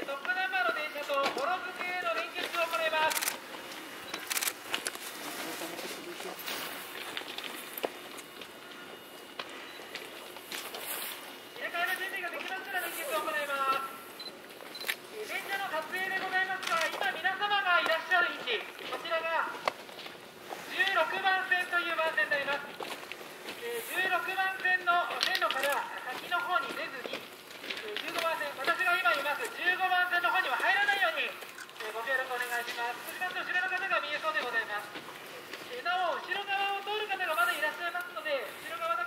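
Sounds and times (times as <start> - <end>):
person talking: 0.0 - 3.4, 11.6 - 14.0, 15.1 - 19.7, 20.6 - 22.8, 23.6 - 35.0, 35.6 - 39.0
sharp clicks: 4.1 - 5.0.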